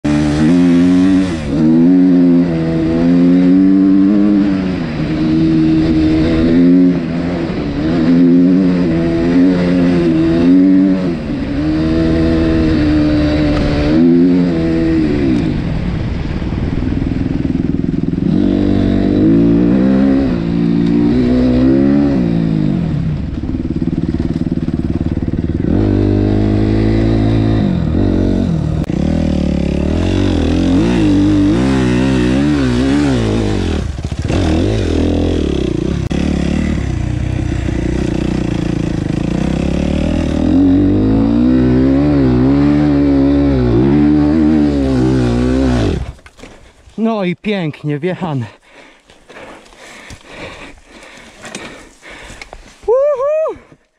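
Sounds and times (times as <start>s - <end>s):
motocross bike engine revving: 0.0s - 46.2s.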